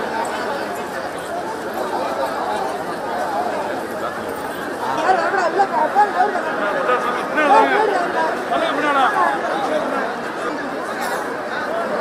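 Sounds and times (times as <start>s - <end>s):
large crowd talking and calling: 0.0s - 12.0s.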